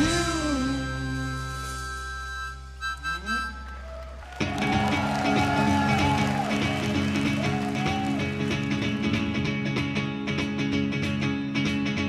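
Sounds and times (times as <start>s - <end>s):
live rock band: 0.0s - 2.4s, 3.8s - 12.0s
harmonica bending melody: 0.0s - 9.4s.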